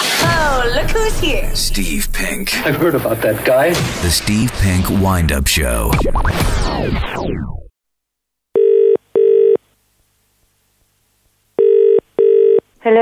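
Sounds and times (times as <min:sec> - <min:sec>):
telephone ringing tone: 0:08.6 - 0:09.6, 0:11.6 - 0:12.6.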